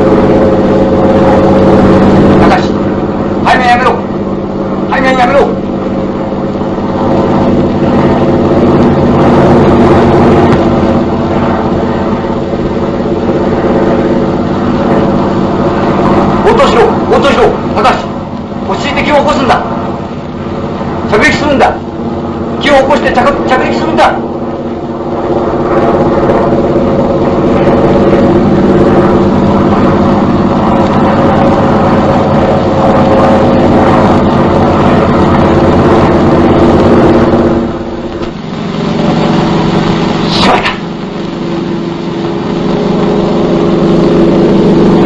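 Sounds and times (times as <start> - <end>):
propeller aircraft engine droning: 0.0 - 45.0
person speaking: 40.2 - 40.9.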